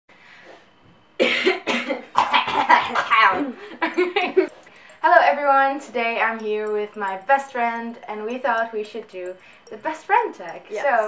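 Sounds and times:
person coughing: 0:01.2 - 0:04.5.

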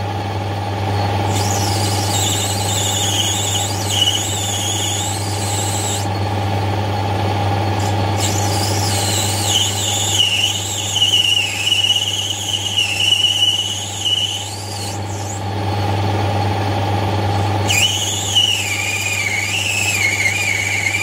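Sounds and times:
lathe motor hum: 0:00.8 - 0:21.0
cutting tool squealing on brass: 0:01.3 - 0:06.2, 0:07.8 - 0:15.4, 0:17.3 - 0:21.0.

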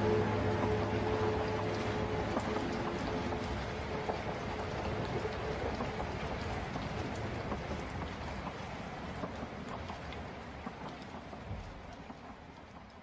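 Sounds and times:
light crackles: 0:00.0 - 0:13.0
rain-like hiss: 0:00.0 - 0:13.0.

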